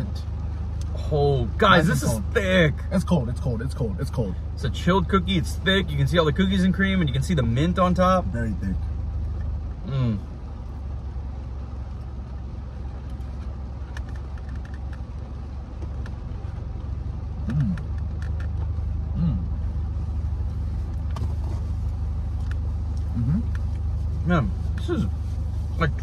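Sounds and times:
car idling: 0.0s - 26.0s
people humming while chewing: 17.4s - 18.0s, 19.1s - 19.6s.

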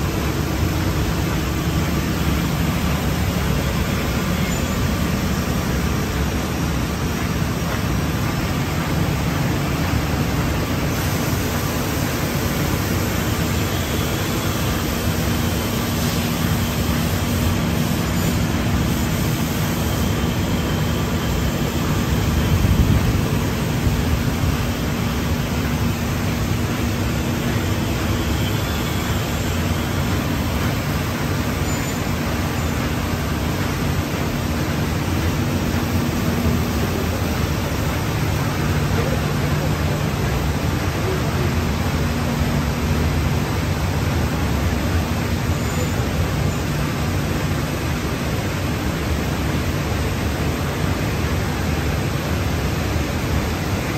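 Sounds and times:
industrial machinery humming: 0.0s - 53.9s.

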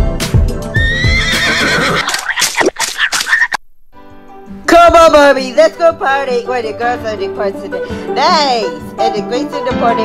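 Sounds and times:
music: 0.0s - 1.8s, 3.9s - 10.0s
horse whinny sound effect: 0.8s - 2.6s.

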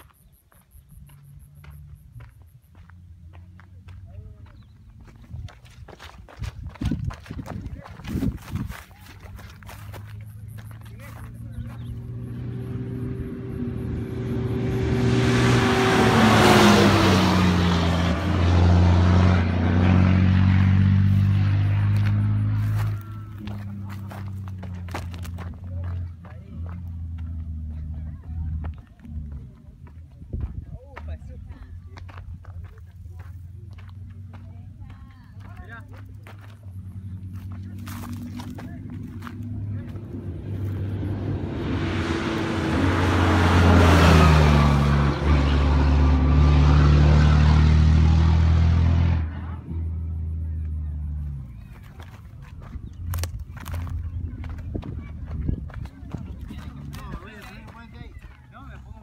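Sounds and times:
tyres crunching over stones: 3.3s - 12.0s, 22.6s - 27.0s, 32.0s - 40.0s, 51.2s - 59.0s
truck diesel engine running hard: 8.4s - 29.6s, 35.4s - 57.7s.

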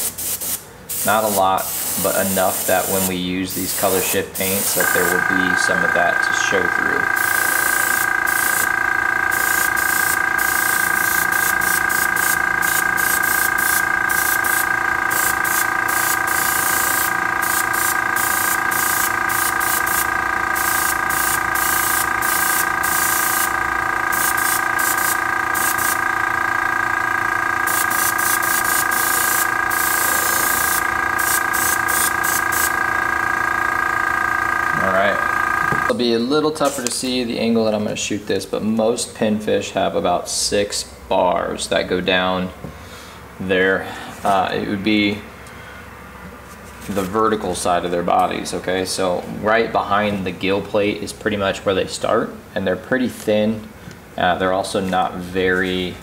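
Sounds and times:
airbrush spraying hiss: 0.0s - 5.4s, 7.2s - 8.7s, 9.3s - 26.0s, 27.7s - 32.8s
compressor whine: 0.0s - 39.2s.

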